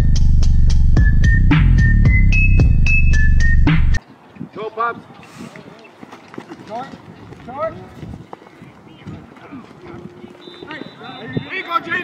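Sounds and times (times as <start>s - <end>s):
footfalls running on grass: 5.0s - 11.3s
players calling out: 8.4s - 12.0s.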